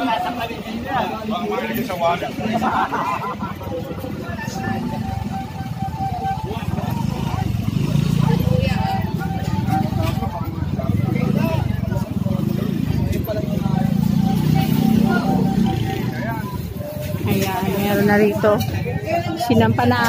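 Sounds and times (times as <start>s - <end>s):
voices talking: 0.0s - 20.0s
motorcycle engine running: 3.9s - 18.9s.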